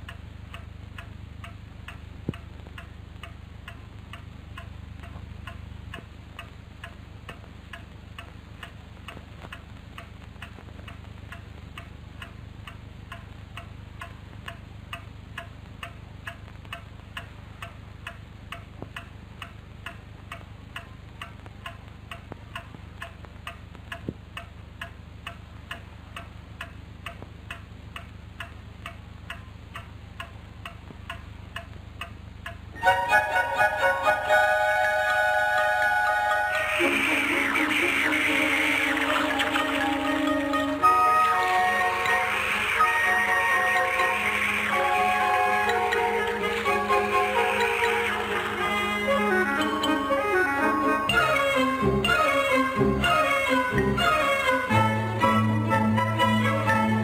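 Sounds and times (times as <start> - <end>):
clock ticking: 0.0 - 57.0.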